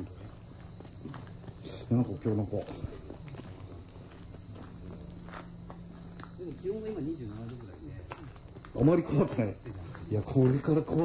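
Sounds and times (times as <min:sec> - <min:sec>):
footsteps on a path: 0:00.0 - 0:11.0
high insect trill: 0:00.0 - 0:11.0.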